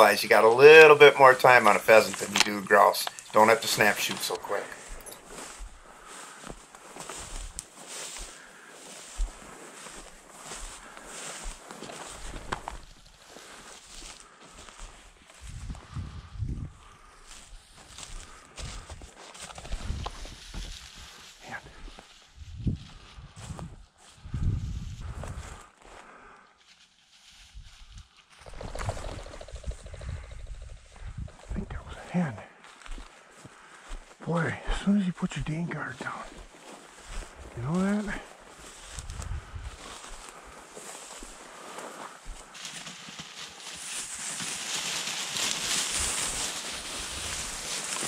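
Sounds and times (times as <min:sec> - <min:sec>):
footsteps in field: 0:00.0 - 0:48.0
dry grass swishing against legs: 0:01.6 - 0:15.7, 0:17.3 - 0:25.4, 0:26.6 - 0:28.3, 0:36.3 - 0:48.0.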